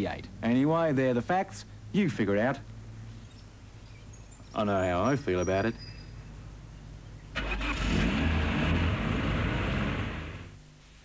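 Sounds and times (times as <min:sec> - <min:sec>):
car engine accelerating hard: 0:07.4 - 0:10.5.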